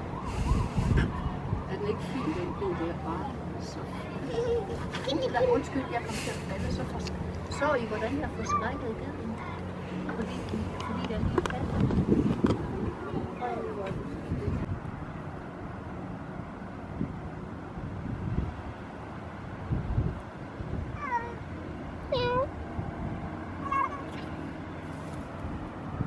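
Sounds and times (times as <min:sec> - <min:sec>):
cat meowing: 0:22.1 - 0:22.5, 0:23.6 - 0:24.2.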